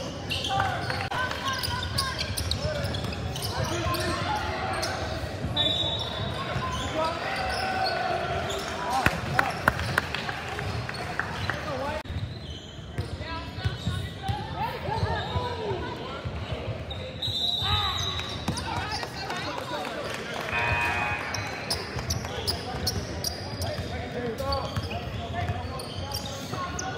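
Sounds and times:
players' voices: 0:00.0 - 0:12.2, 0:13.0 - 0:26.9.

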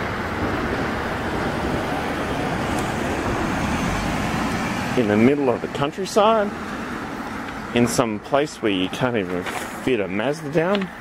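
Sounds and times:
minivan driving past: 0:00.0 - 0:09.1.

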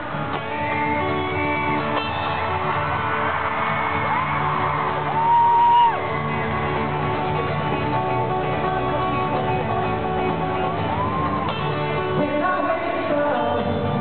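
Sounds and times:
acoustic guitars strumming: 0:00.0 - 0:14.0.

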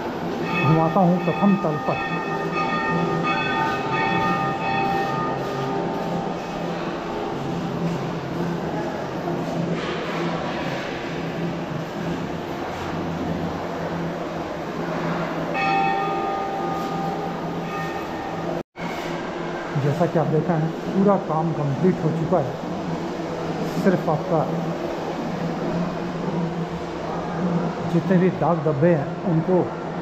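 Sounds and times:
temple bells ringing: 0:00.2 - 0:08.4, 0:14.8 - 0:18.6.

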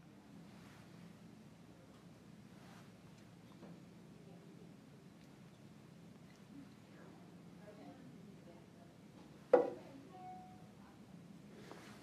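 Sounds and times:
tool knocking on printer: 0:09.6 - 0:09.8.

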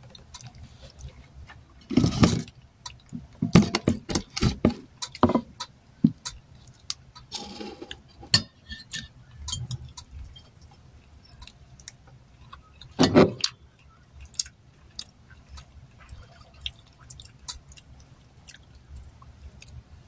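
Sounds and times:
person chewing: 0:00.0 - 0:03.4, 0:09.6 - 0:19.8.

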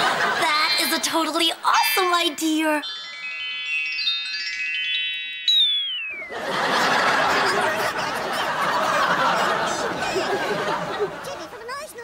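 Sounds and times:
bell-like chime notes climbing: 0:02.0 - 0:10.9
bright note sliding downward: 0:02.8 - 0:06.6.

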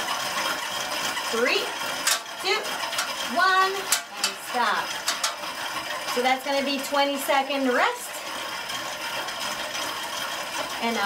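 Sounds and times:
spinning bike flywheel whirring: 0:00.0 - 0:11.0
person speaking: 0:02.4 - 0:05.0.

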